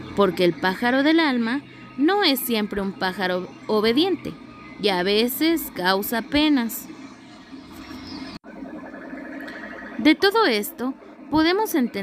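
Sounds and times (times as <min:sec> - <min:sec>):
faint low background sound: 0:00.0 - 0:12.0.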